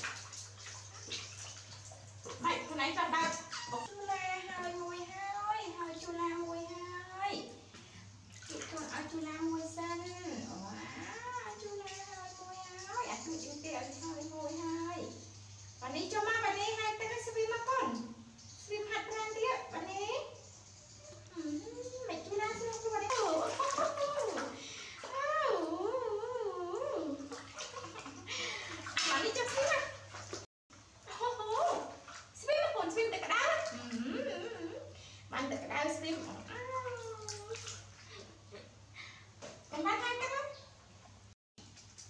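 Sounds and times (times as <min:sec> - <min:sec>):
water sloshing in metal basin: 0:00.0 - 0:42.0.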